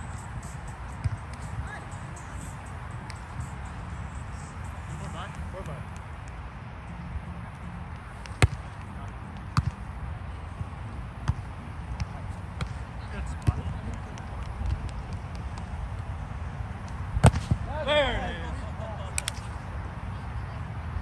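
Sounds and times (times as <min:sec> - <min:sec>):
volleyball hits: 0:08.2 - 0:08.8, 0:11.2 - 0:15.7, 0:17.2 - 0:17.7.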